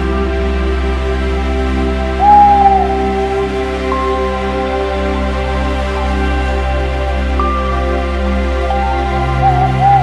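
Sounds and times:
calm background music: 0.0s - 10.0s
whistled owl hoot: 2.2s - 3.4s, 8.8s - 10.0s.

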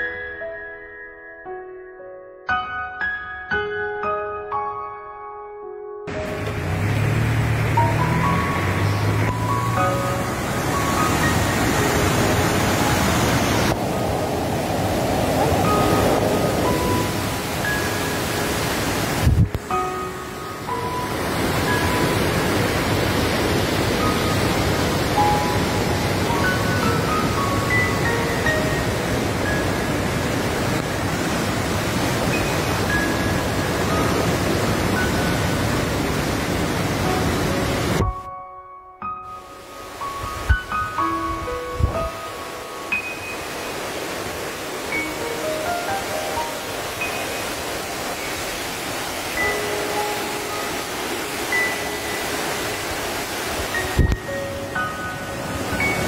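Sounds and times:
soft background music: 0.0s - 56.0s
river water rushing: 6.1s - 38.1s, 39.3s - 56.0s.

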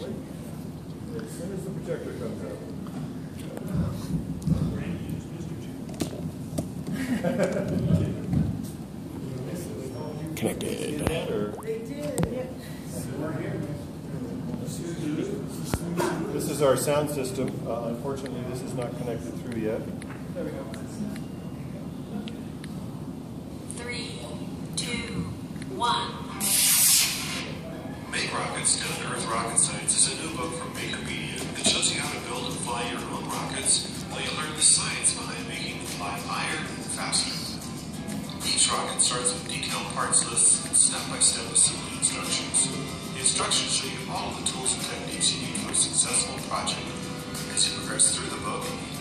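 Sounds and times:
indistinct talk of people: 0.0s - 49.0s
rocket motor rushing hiss: 26.4s - 27.6s.

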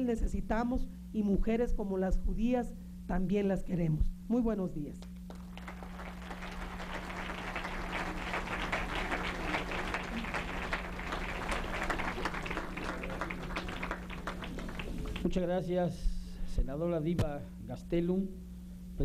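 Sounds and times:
audience applauding: 5.3s - 15.4s.

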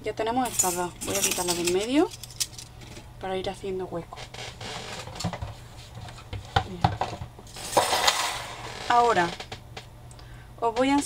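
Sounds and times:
steel dies clinking: 0.4s - 2.7s.

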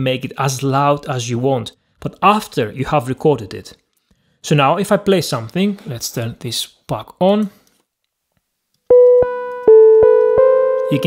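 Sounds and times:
synthesizer notes: 8.9s - 11.0s.

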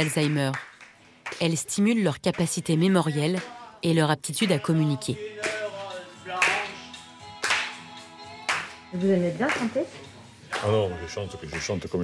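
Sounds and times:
hands clapping: 0.0s - 1.6s, 3.2s - 3.6s, 5.4s - 8.8s, 9.4s - 9.8s, 10.5s - 12.0s
song playing: 2.4s - 12.0s.

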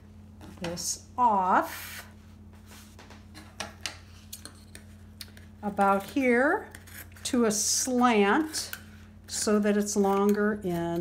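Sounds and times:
steady low hum: 0.0s - 11.0s.

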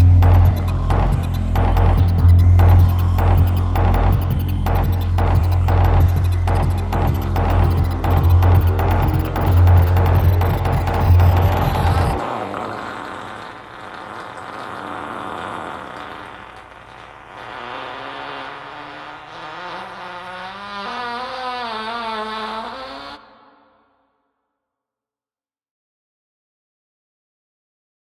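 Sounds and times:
wavering electronic tones: 0.0s - 15.8s
low throbbing electronic drone: 0.0s - 21.2s
crackling noise: 0.0s - 22.2s.

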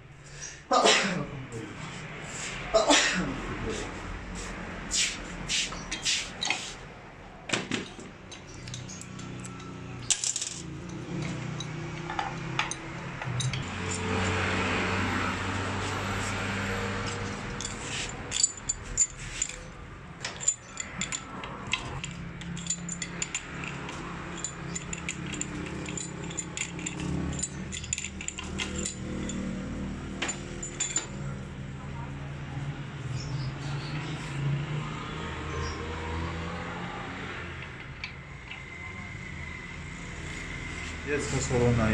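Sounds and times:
hand tools clicking on metal: 7.8s - 14.0s, 17.0s - 29.5s
metal parts clinking in pan: 17.6s - 29.5s.

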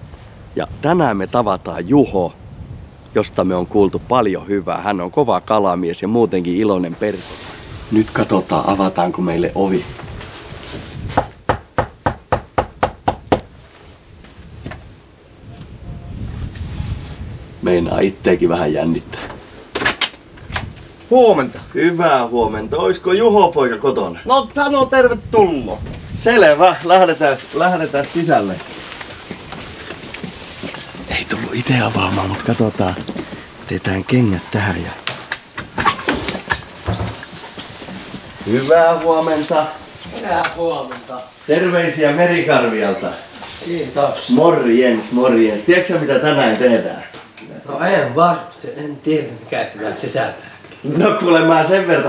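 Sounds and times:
shuffling steps: 6.8s - 11.4s, 13.5s - 17.4s, 25.6s - 45.4s
padded jacket rustling: 9.8s - 11.2s, 26.9s - 33.7s
knuckles knocking on door: 11.2s - 13.5s.

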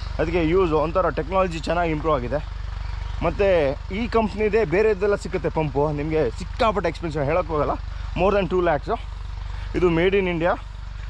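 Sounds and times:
tractor engine running: 0.0s - 11.0s
man talking: 0.2s - 2.5s, 3.2s - 9.1s, 9.7s - 10.7s.

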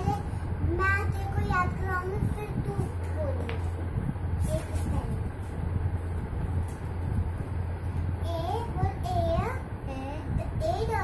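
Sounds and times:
rumbling background noise: 0.0s - 11.0s
steady low hum: 0.0s - 11.0s.

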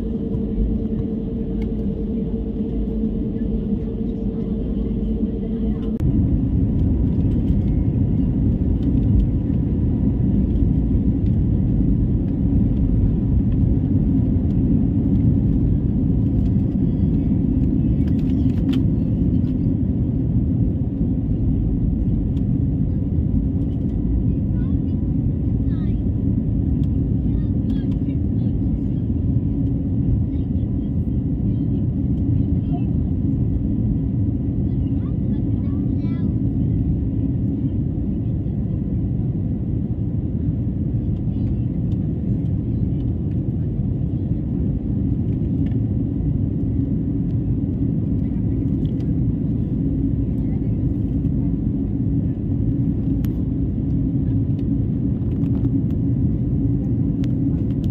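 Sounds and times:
jet engines rumbling in cabin: 0.0s - 57.9s.

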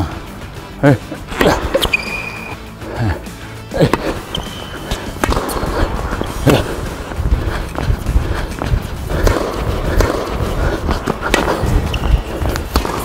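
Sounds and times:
racket striking ball: 1.2s - 2.6s, 3.8s - 13.0s
shoes scuffing on court: 1.2s - 2.7s, 3.8s - 13.0s
ball bouncing: 1.3s - 2.6s, 3.8s - 13.0s.

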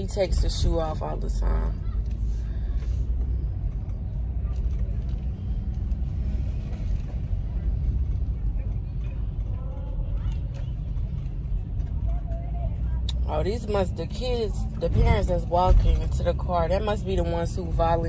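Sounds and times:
car engine rumble inside cabin: 0.0s - 18.0s.

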